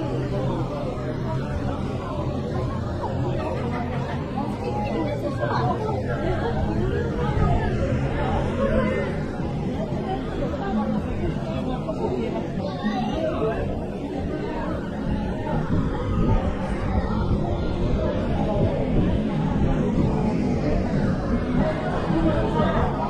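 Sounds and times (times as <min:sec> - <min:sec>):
crowd chatter: 0:00.0 - 0:23.0.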